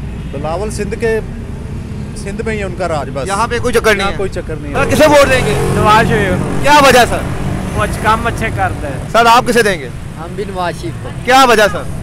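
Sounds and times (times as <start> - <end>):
road traffic hum: 0.0 - 12.0
men talking: 0.3 - 1.4, 2.1 - 12.0.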